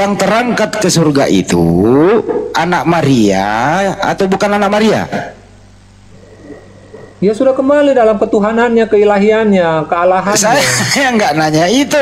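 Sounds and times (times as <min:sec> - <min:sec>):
low steady hum and hiss: 0:00.0 - 0:12.0
man talking: 0:07.2 - 0:12.0.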